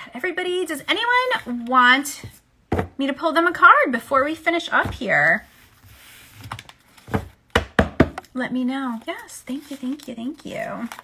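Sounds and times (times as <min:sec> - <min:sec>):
cards knocking and tapping on desk: 0:06.6 - 0:08.3.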